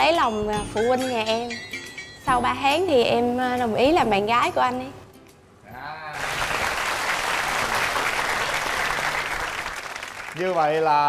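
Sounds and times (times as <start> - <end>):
studio audience applauding: 6.1 - 11.0.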